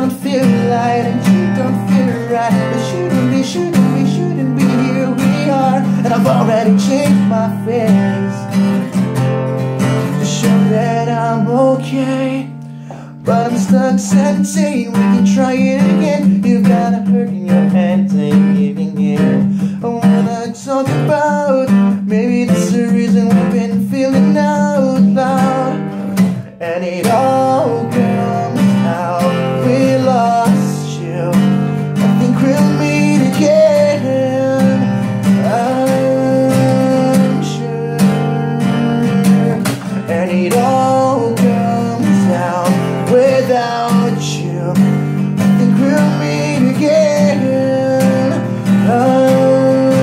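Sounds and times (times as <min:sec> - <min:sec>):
acoustic guitar strumming chords: 0:00.0 - 0:50.0
man singing: 0:00.0 - 0:50.0.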